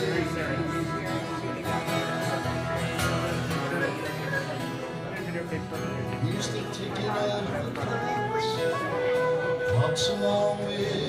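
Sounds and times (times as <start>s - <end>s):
acoustic guitar strummed: 0.0s - 11.0s.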